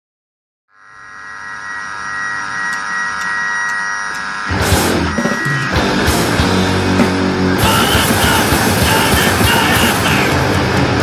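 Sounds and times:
buzzing drone: 0.7s - 11.0s
distorted electric guitar: 0.7s - 11.0s
drums: 4.5s - 11.0s.

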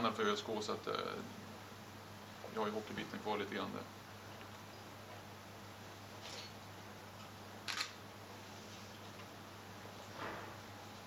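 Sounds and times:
camera shutter double click: 7.7s - 8.0s.

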